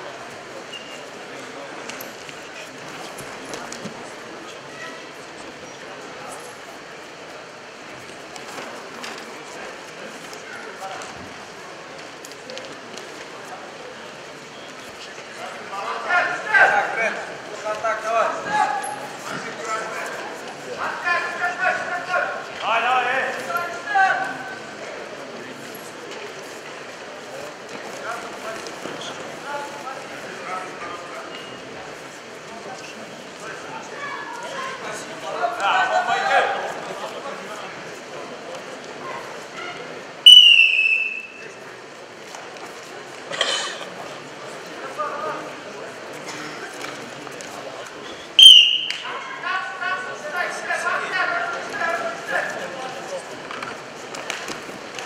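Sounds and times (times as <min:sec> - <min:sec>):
referee's whistle blast: 0:40.2 - 0:41.4, 0:48.4 - 0:49.1
voices shouting calls: 0:40.3 - 0:41.3, 0:48.4 - 0:49.5.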